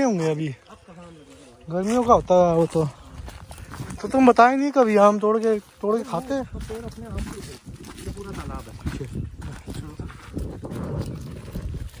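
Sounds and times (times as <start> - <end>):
footsteps on leafy dirt path: 0.0 - 12.0
man speaking: 4.0 - 10.2.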